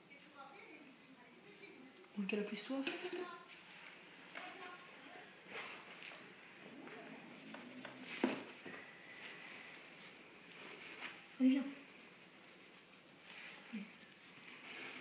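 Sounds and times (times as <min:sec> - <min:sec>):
rustling and handling noises: 0:00.0 - 0:15.0.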